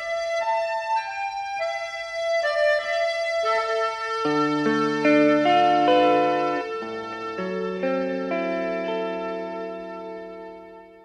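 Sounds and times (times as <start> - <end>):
slow keyboard melody: 0.0 - 11.0.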